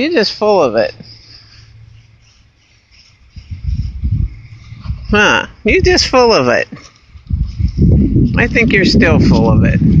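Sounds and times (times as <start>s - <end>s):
high-pitched chirring: 0.5s - 6.2s.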